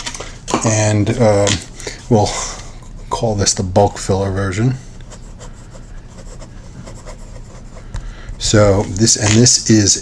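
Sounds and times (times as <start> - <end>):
pen nib scratching on paper: 5.0 - 8.8.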